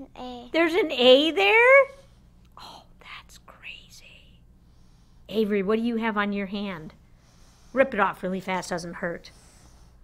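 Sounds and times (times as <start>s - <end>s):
person whispering: 2.6s - 4.4s.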